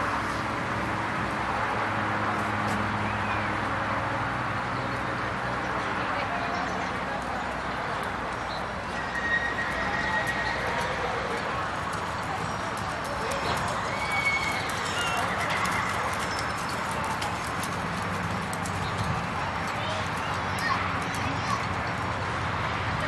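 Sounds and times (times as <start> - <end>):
faint voices: 5.0 - 23.0
horse galloping on sand: 9.0 - 22.2.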